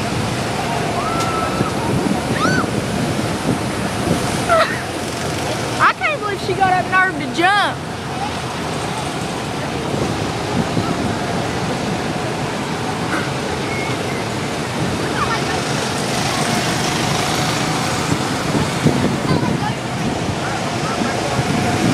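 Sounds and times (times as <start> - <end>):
rushing outdoor background noise: 0.0 - 21.9
faint voices: 5.2 - 21.9.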